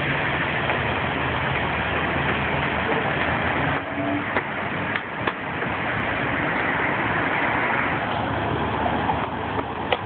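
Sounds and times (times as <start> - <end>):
city street traffic: 0.0 - 10.0
heavy vehicle engine idling: 0.0 - 10.0.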